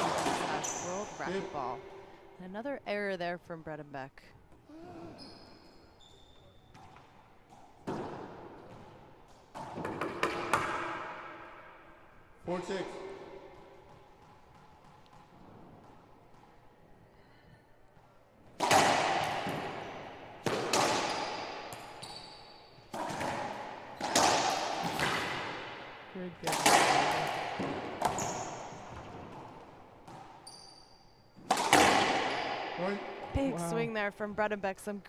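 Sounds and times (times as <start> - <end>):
racquetball hits echoing: 0.0 - 2.4, 6.6 - 12.2, 12.9 - 16.9, 18.0 - 33.3.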